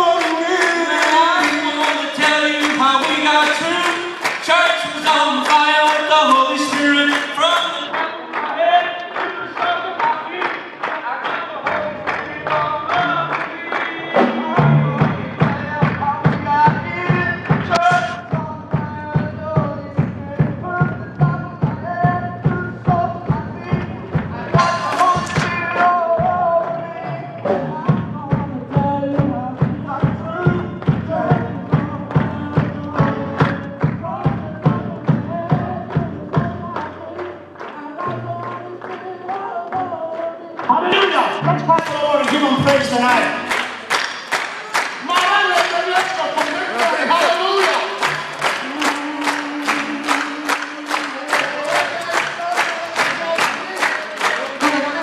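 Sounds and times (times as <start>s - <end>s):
male group singing worship song: 0.0s - 43.3s, 45.0s - 55.0s.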